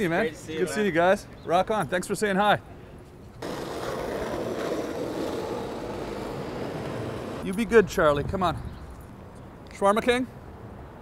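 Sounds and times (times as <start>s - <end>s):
skateboard wheels rolling on asphalt: 3.4s - 7.5s.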